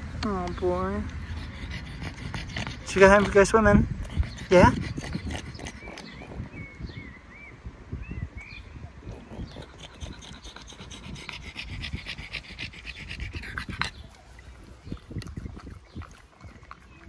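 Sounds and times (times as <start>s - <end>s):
dog panting: 1.1s - 6.7s, 9.1s - 17.0s.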